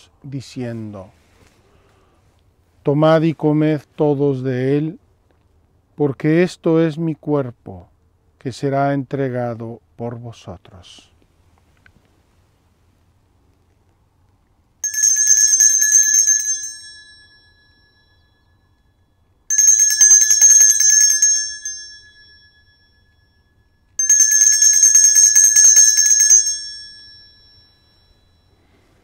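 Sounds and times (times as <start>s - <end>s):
altar bells ringing: 14.8s - 28.8s.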